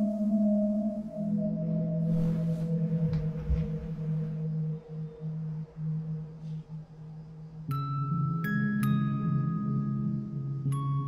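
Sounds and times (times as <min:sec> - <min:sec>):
low droning music note: 0:00.0 - 0:08.3.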